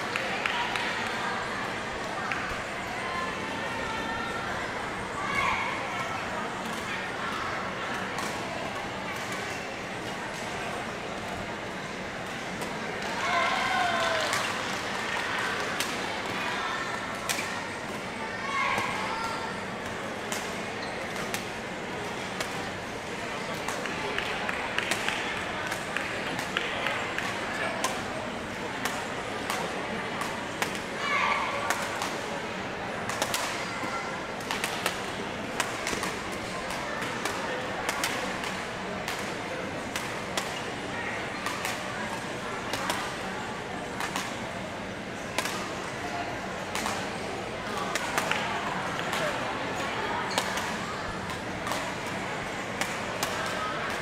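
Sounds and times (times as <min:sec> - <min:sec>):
voices chattering in hall: 0:00.0 - 0:54.0
rackets hitting shuttlecock: 0:19.8 - 0:22.7, 0:23.5 - 0:28.2, 0:28.8 - 0:30.9, 0:31.6 - 0:32.3, 0:33.0 - 0:33.7, 0:34.3 - 0:40.7, 0:41.3 - 0:43.2, 0:43.9 - 0:44.5, 0:45.3 - 0:45.8, 0:46.7 - 0:54.0
badminton rackets hitting shuttlecock: 0:34.4 - 0:40.6, 0:45.4 - 0:45.7.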